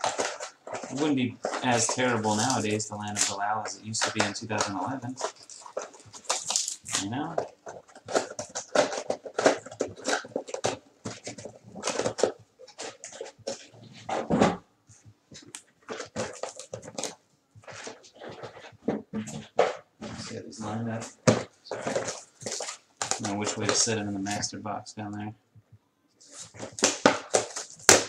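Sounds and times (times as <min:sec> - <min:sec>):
cardboard boxes rustling and clicking: 0:00.0 - 0:14.6, 0:15.3 - 0:24.0, 0:26.2 - 0:28.0
man talking: 0:00.8 - 0:05.4, 0:06.9 - 0:07.5, 0:19.2 - 0:22.1, 0:23.2 - 0:25.4.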